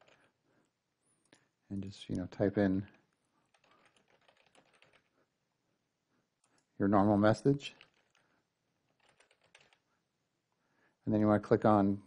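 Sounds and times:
computer keyboard typing: 0.0 - 0.3, 3.4 - 5.2, 7.8 - 9.9.

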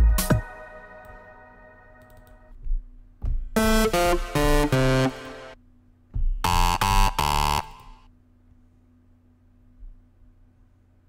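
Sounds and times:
bright synthesizer lead note: 3.6 - 5.6, 6.4 - 8.0.

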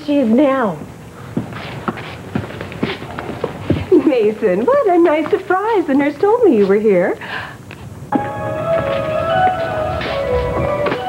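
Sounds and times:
footsteps on hard floor: 1.3 - 5.6, 8.1 - 11.0.

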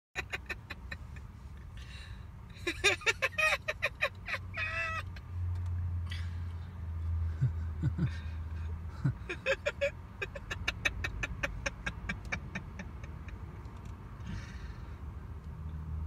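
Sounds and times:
car engine idling: 0.2 - 15.6.

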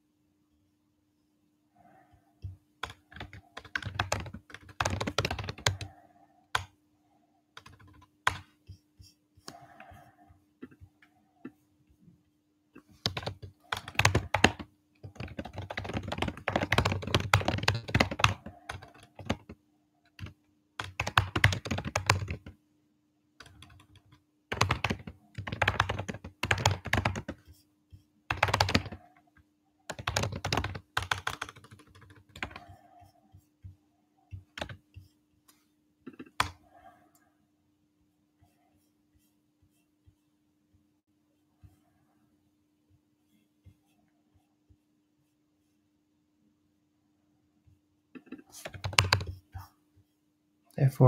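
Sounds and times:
typing on computer keyboard: 2.8 - 6.8, 7.6 - 8.6, 13.0 - 22.6, 23.4 - 27.5, 28.3 - 29.2, 29.9 - 33.1, 34.3 - 34.9, 36.1 - 36.9, 48.2 - 49.5.

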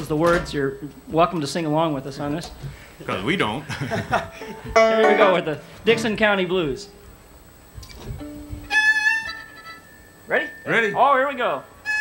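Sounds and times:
fiddle bowed notes: 8.2 - 9.6.

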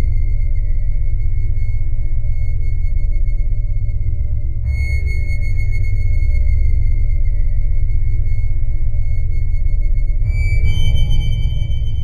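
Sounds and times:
deep low drone: 0.0 - 12.0
high sine-like tone: 0.1 - 12.0.

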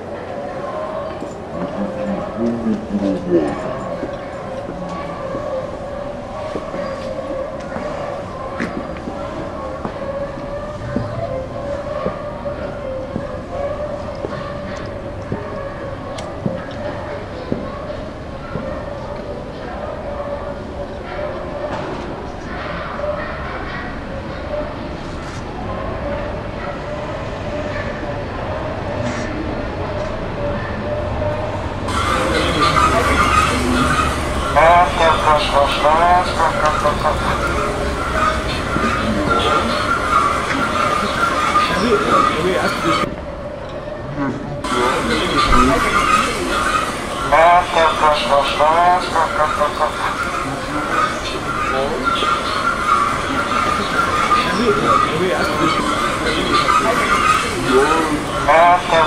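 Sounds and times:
voices: 0.0 - 59.0.

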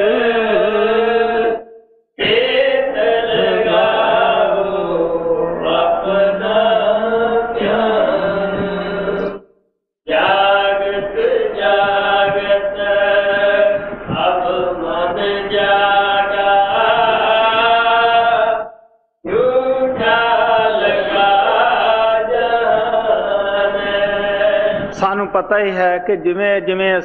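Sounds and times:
person chanting a hymn: 0.0 - 1.6, 2.2 - 9.4, 10.1 - 18.7, 19.3 - 27.0.

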